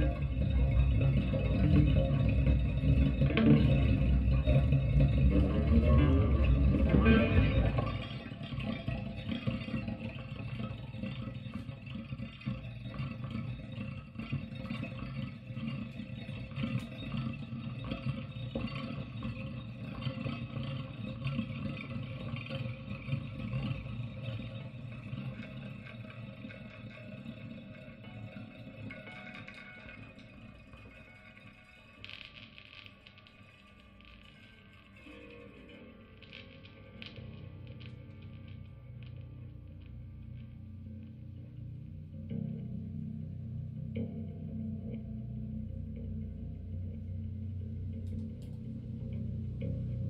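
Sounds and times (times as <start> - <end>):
solo electric guitar: 0.0 - 12.2.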